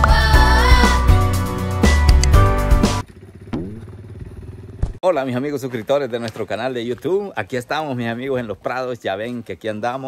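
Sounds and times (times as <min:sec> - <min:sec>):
motorcycle engine revving: 0:02.8 - 0:05.0.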